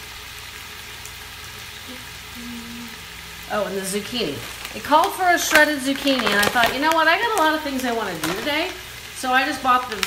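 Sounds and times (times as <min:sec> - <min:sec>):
vegetables sizzling in oil: 0:00.0 - 0:10.0.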